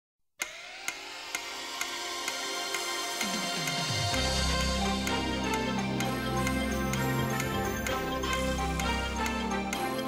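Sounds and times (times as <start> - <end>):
clock-like ticking: 0.4 - 10.0.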